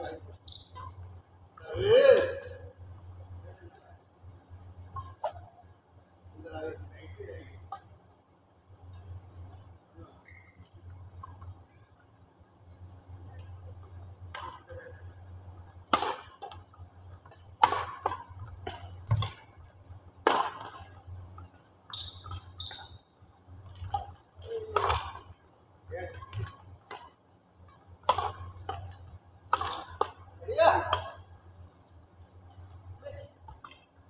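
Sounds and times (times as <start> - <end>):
steady low hum: 0.0 - 34.0
rackets striking shuttlecock: 15.8 - 19.6, 20.2 - 23.0, 23.6 - 25.4, 26.1 - 31.2.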